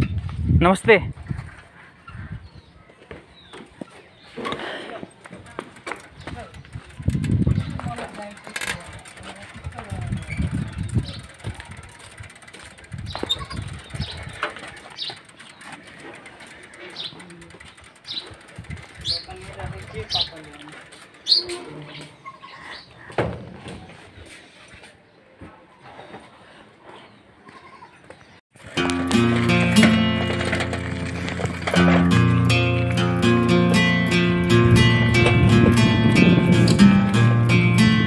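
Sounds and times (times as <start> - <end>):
bird chirping: 10.0 - 11.8, 12.9 - 18.4, 19.0 - 23.2.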